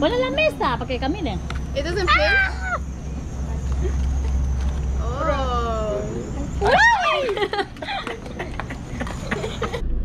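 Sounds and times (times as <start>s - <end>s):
low steady rumble: 0.0s - 10.0s
people exclaiming: 2.0s - 2.9s, 5.1s - 8.0s.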